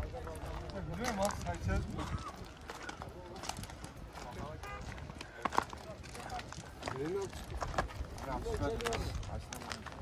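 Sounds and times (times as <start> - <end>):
footsteps on gravel: 0.0 - 10.0
people talking: 0.0 - 10.0.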